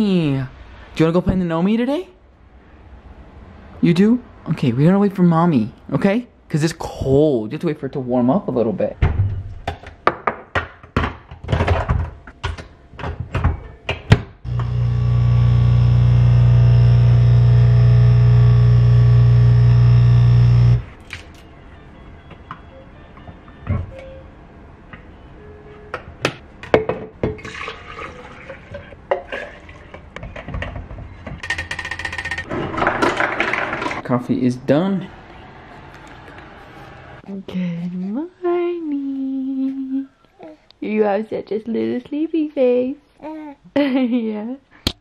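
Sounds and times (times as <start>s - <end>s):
espresso machine pump buzzing: 14.5s - 20.9s.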